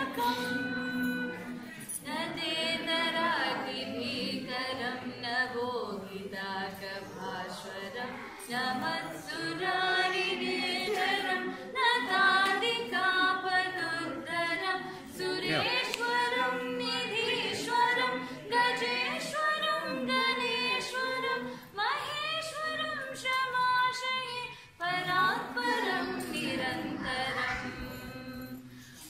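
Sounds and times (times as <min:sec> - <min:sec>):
woman singing unaccompanied: 0:00.0 - 0:28.7.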